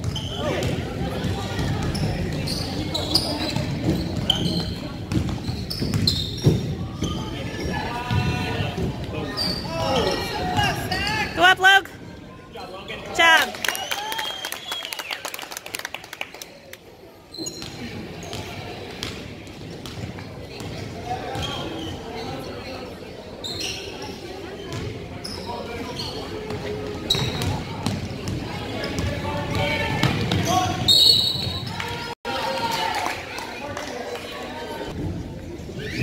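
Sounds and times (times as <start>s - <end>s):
voices of players and spectators: 0.0s - 36.0s.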